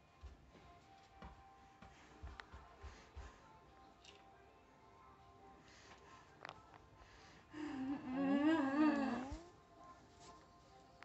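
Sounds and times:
wavering whining vocal cry: 7.6 - 9.4.

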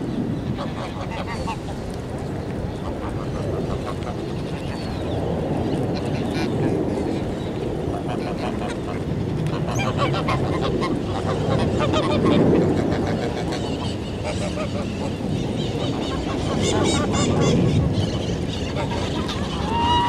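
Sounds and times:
geese honking: 8.1 - 20.0.

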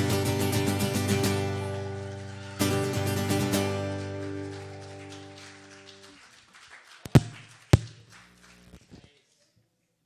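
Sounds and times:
acoustic guitar chord strummed: 0.0 - 4.9
loud thumps: 7.1 - 8.0.

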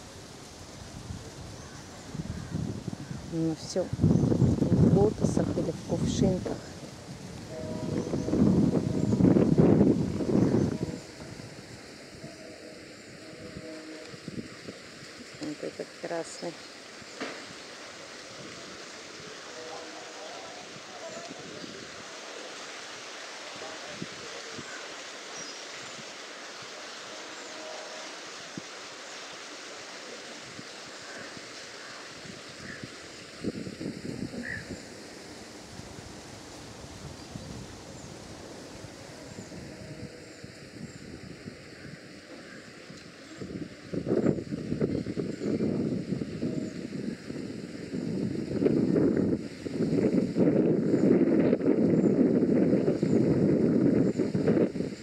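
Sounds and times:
wind buffeting microphone: 0.0 - 26.8, 30.3 - 55.0
faint even hiss: 0.0 - 51.1.

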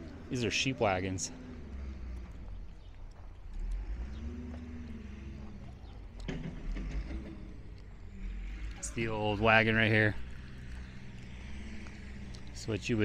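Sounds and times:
low rumble: 0.0 - 13.0.

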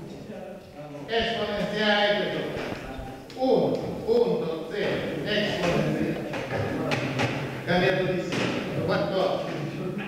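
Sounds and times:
knocks: 8.3 - 8.9.

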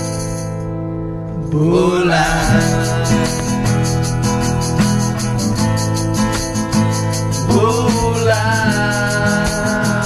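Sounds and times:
tambourine shaken: 0.0 - 0.6, 2.2 - 10.0
strummed acoustic guitars: 0.0 - 10.0.

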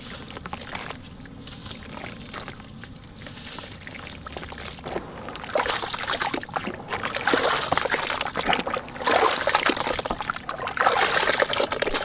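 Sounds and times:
wet grit crumbling into water: 0.0 - 12.0
hands sloshing in water: 3.4 - 12.0.

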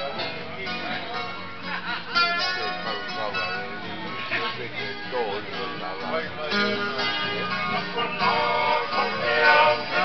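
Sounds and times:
group of voices singing: 7.8 - 10.0.

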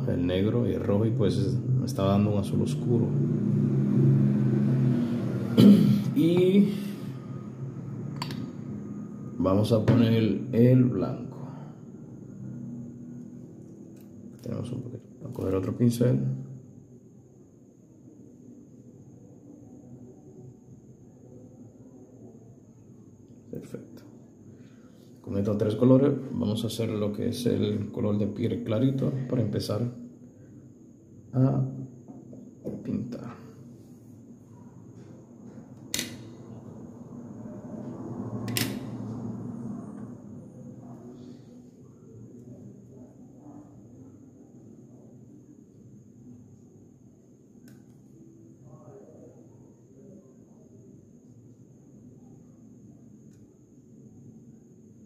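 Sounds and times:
low hum: 0.0 - 15.0, 32.7 - 45.5
faint high whine: 0.0 - 55.0.

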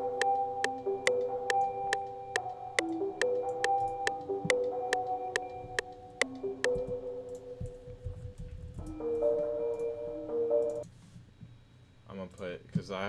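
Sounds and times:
metronome click: 0.0 - 7.8
piano-like keys playing slow melody: 0.0 - 10.8.

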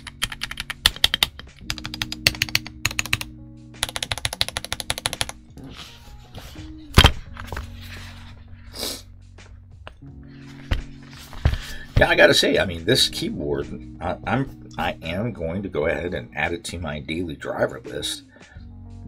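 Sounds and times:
mechanical keyboard typing: 0.0 - 5.4.

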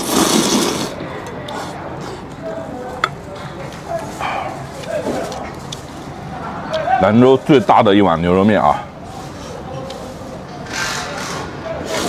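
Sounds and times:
loud slurp of broth: 0.0 - 1.8.

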